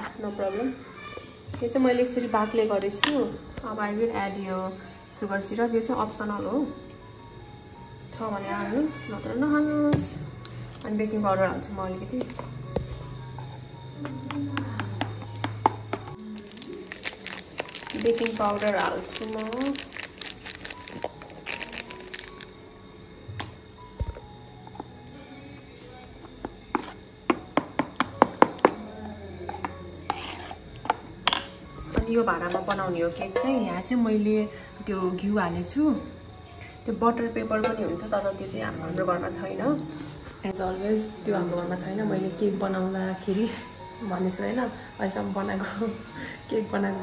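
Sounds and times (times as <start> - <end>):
spoon scraping bowl: 26.8 - 27.0, 29.6 - 30.6
metal spoon clinking on steel bowl: 30.1 - 31.6.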